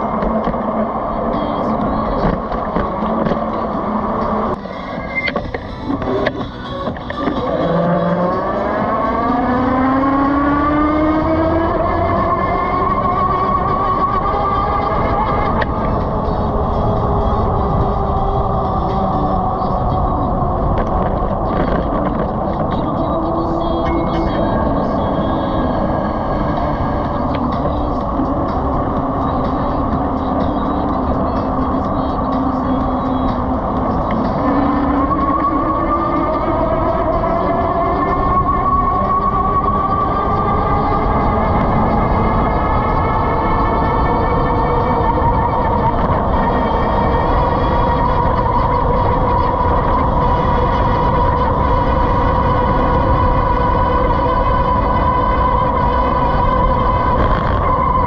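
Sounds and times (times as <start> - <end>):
wind and road noise: 0.0 - 58.0.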